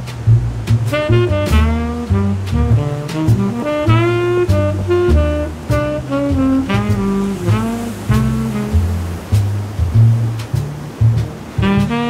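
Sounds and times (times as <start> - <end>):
ocean surf: 0.0 - 12.0
smooth jazz: 0.0 - 12.0.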